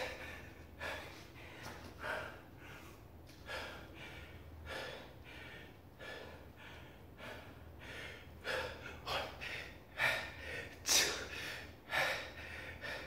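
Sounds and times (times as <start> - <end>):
man breathing hard: 0.0 - 13.0.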